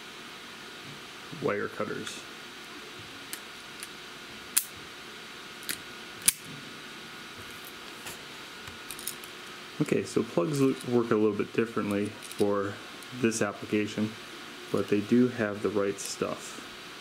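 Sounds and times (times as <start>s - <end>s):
faint steady hiss: 0.0s - 17.0s.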